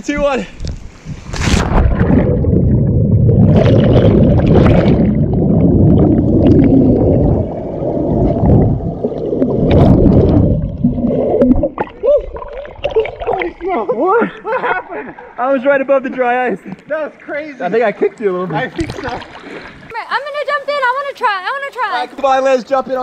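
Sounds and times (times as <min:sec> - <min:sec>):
muffled underwater rushing: 0:01.0 - 0:13.7
splashing: 0:01.2 - 0:15.4, 0:18.6 - 0:20.1.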